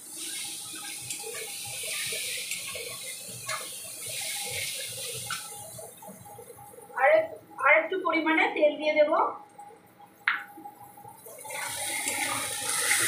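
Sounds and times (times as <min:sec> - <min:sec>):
food sizzling in oil: 0:00.0 - 0:07.0, 0:10.8 - 0:13.0.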